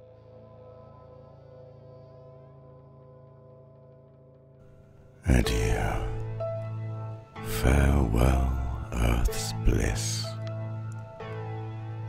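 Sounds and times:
ambient drone music: 0:05.0 - 0:12.0.

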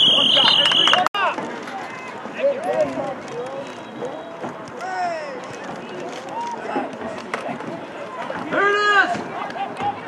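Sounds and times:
crowd chatter: 0:00.0 - 0:10.0
voices calling out: 0:00.0 - 0:10.0.

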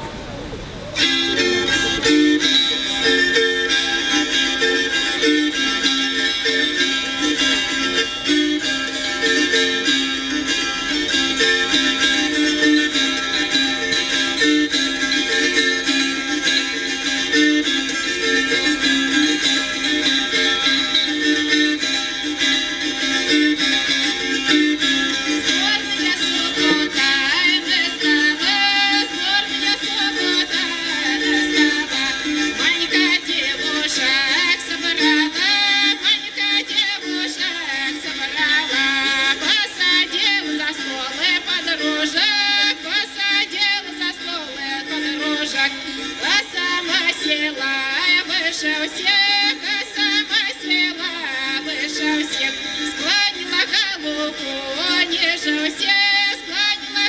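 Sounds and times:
psaltery strummed rhythmically: 0:01.0 - 0:57.0.

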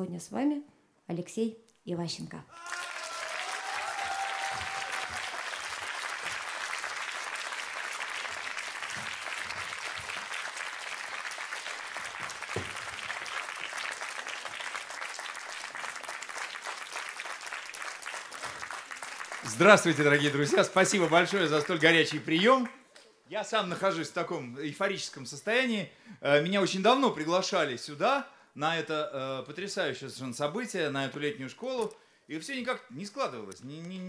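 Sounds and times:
audience applauding: 0:02.5 - 0:22.7.

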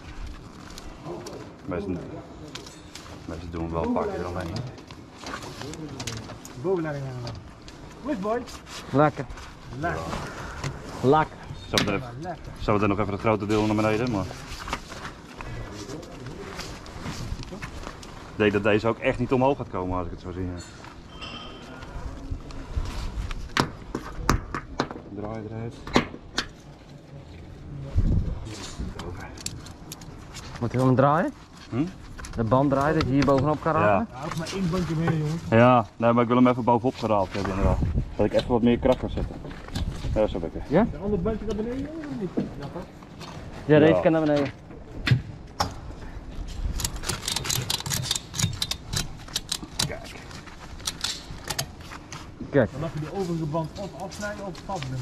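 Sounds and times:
ratchet strap clicks and knocks: 0:46.6 - 0:51.8.

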